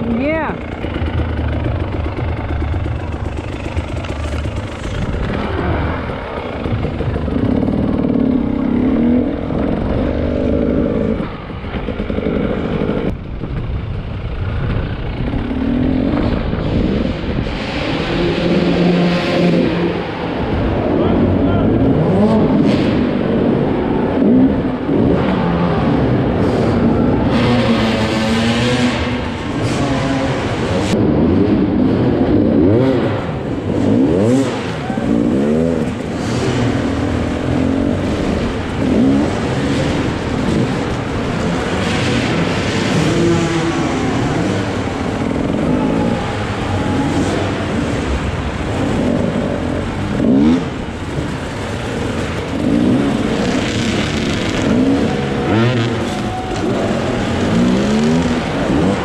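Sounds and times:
two-stroke motorbike engine revving: 0:00.0 - 0:59.0.

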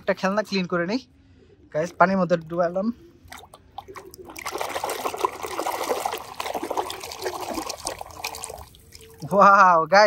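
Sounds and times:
water sloshing in a bucket: 0:01.7 - 0:09.6.

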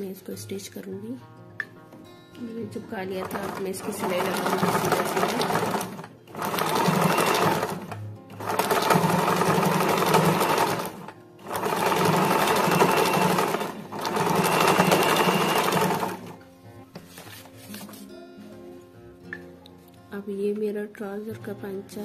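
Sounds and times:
sewing machine stitching: 0:03.1 - 0:16.4.

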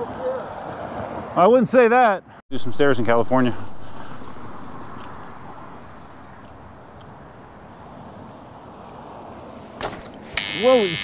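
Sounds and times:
wind on microphone: 0:02.5 - 0:08.0.

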